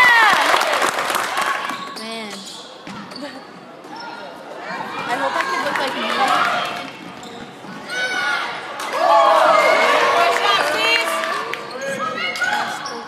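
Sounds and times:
spectator chatter: 0:00.0 - 0:13.0.

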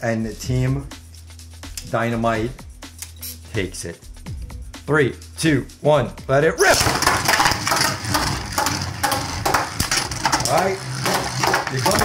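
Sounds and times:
spinning tops whirring: 0:06.8 - 0:12.0.

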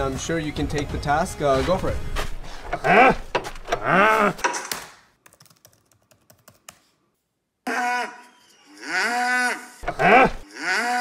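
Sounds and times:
cow mooing: 0:08.7 - 0:11.0.

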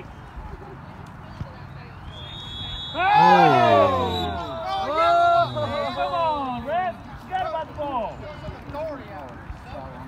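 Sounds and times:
spectators crying out: 0:03.0 - 0:06.5.

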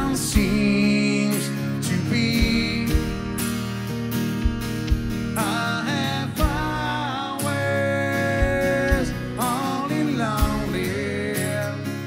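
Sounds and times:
man singing: 0:00.0 - 0:03.3, 0:05.4 - 0:12.0
strummed acoustic guitar: 0:00.0 - 0:12.0
foot percussion thump: 0:04.4 - 0:05.4.

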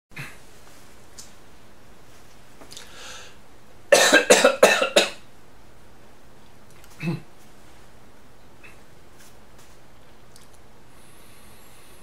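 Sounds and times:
man coughing: 0:03.9 - 0:05.2, 0:07.0 - 0:07.3.

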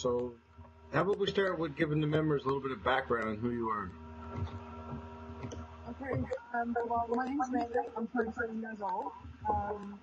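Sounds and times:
low hum with overtones: 0:00.0 - 0:10.0.

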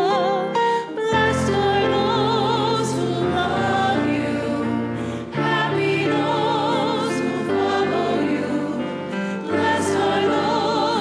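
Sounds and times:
woman singing with vibrato: 0:00.0 - 0:04.0
sustained chordal accompaniment: 0:00.0 - 0:11.0.

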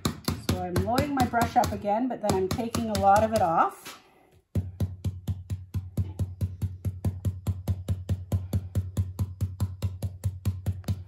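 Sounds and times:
stencil brush tapping: 0:00.0 - 0:11.0.

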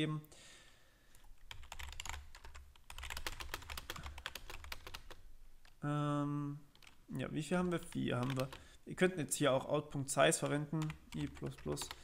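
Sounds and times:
rapid keyboard typing: 0:01.3 - 0:05.2, 0:06.7 - 0:08.6, 0:10.3 - 0:12.0.

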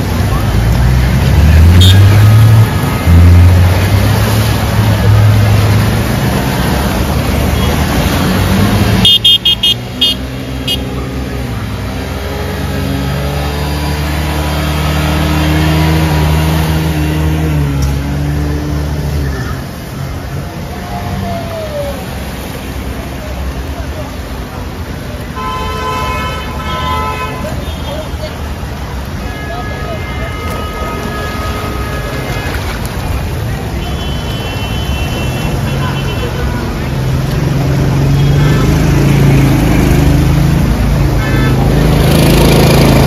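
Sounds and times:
vehicles driving through flood water: 0:00.0 - 0:43.0
car horn beeping: 0:01.7 - 0:03.0, 0:09.0 - 0:11.0, 0:25.4 - 0:27.9, 0:29.3 - 0:32.5, 0:33.8 - 0:36.4.

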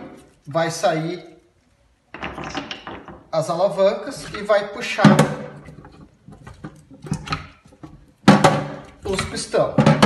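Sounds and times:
metal parts knocking in sink: 0:02.1 - 0:03.4, 0:04.2 - 0:10.0.

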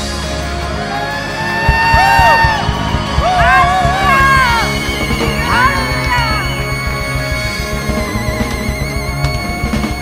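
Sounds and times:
bass and keys: 0:00.0 - 0:10.0
drum kit strikes: 0:01.6 - 0:05.2
sliding melody line: 0:01.7 - 0:10.0.

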